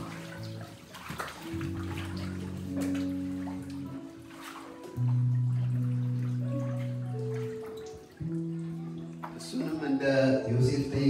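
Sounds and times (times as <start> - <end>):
water splashing and sloshing: 0.0 - 10.6
background music of held chords: 0.0 - 11.0.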